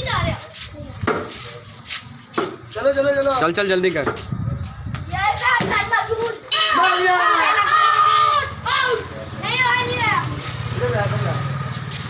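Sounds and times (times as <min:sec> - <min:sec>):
people calling out: 0:06.4 - 0:10.0.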